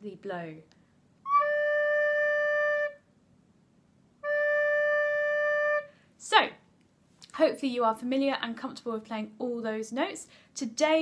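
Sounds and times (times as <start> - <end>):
recorder playing held notes: 1.2 - 3.0, 4.2 - 5.9.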